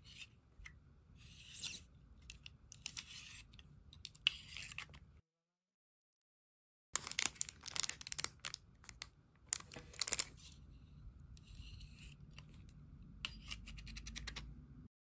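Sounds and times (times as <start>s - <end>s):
plastic packaging crinkling: 7.0s - 10.4s.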